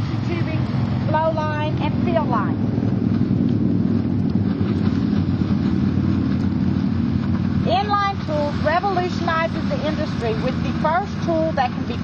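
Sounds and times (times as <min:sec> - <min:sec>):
engine running with low drone: 0:00.0 - 0:12.0.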